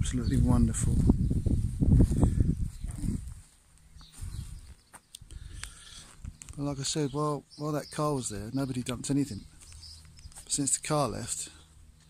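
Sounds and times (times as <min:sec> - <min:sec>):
low rumbling microphone noise: 0:00.0 - 0:07.2.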